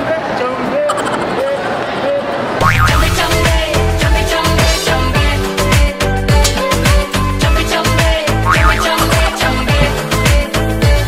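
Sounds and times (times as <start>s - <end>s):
crowd voices: 0.0s - 5.1s.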